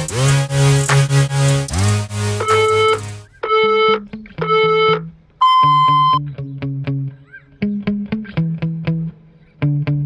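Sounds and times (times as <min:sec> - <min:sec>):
electronic background music: 0:00.0 - 0:06.2
electronic timer beeps: 0:02.4 - 0:06.2.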